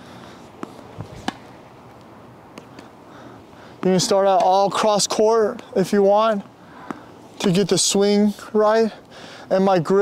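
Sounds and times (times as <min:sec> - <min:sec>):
tennis ball bouncing: 0:00.6 - 0:02.8
tennis ball struck by racket: 0:00.6 - 0:02.8.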